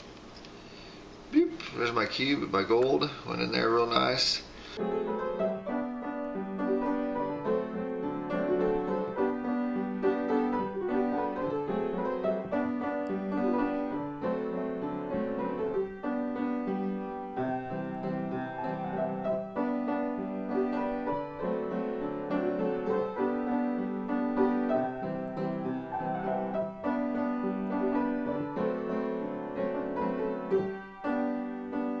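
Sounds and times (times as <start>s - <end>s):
slow piano chords: 4.8s - 32.0s.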